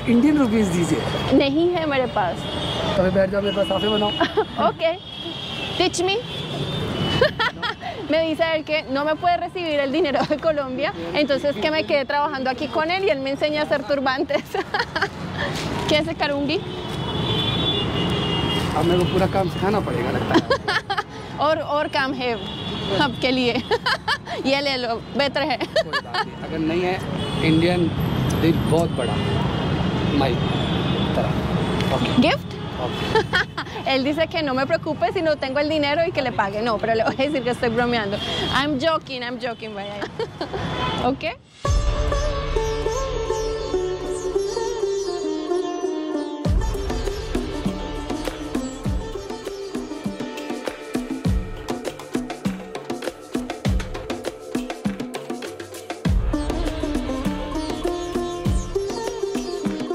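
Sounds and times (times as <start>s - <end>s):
street noise: 0.0s - 59.9s.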